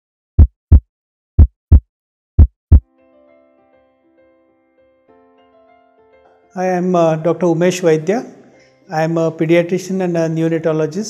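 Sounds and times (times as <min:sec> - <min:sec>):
heartbeat thumps: 0:00.4 - 0:02.8.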